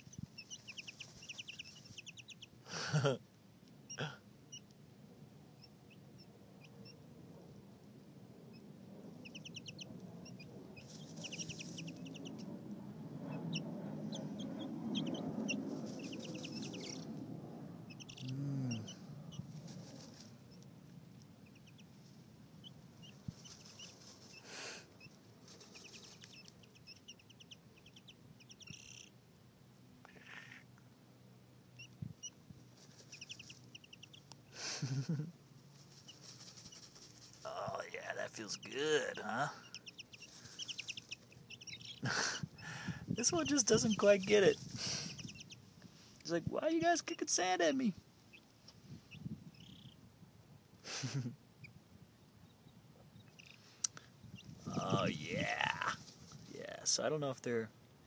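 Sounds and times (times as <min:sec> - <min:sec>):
chicks peeping: 0:00.0 - 0:02.6, 0:03.7 - 0:04.8, 0:05.5 - 0:07.1, 0:08.5 - 0:29.2, 0:31.7 - 0:50.1, 0:51.6 - 0:56.5
scratchy rustle of dirt: 0:19.4 - 0:20.5, 0:23.1 - 0:24.5, 0:35.7 - 0:37.8, 0:54.5 - 0:56.5.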